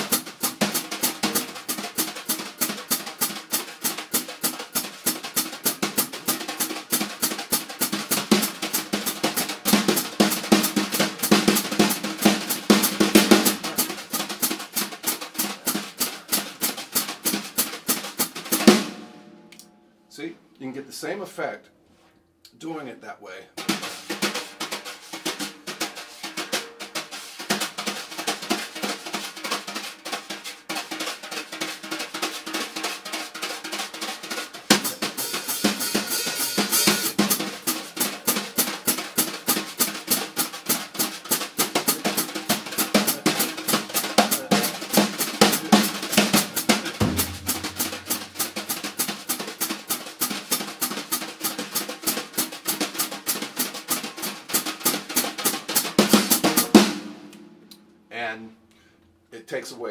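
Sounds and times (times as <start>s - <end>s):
wire brushes on snare drum: 0.0s - 19.7s, 23.6s - 57.6s
low bass drum note: 47.0s - 48.4s.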